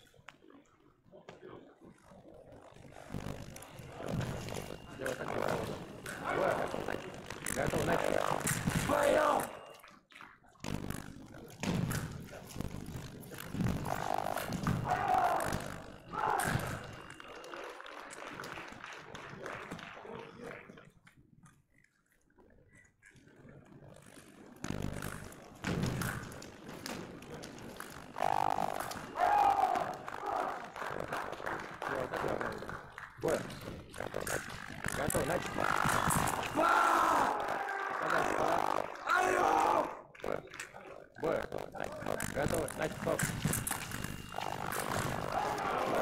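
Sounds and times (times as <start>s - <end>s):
indistinct voices in echoing hall: 11.1s - 20.8s, 25.1s - 46.0s.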